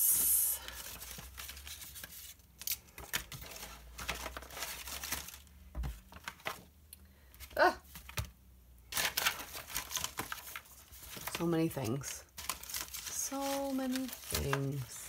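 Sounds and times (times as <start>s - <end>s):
paper sheets rustling: 0.4s - 6.7s, 8.9s - 15.0s.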